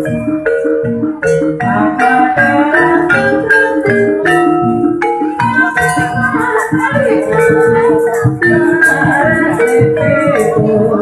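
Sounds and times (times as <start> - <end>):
gamelan metallophones ringing: 0.0 - 11.0
low beat: 0.0 - 11.0.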